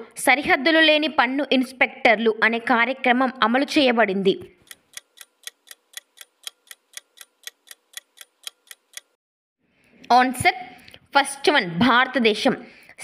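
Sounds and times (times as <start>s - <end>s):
clock ticking: 4.6s - 9.2s.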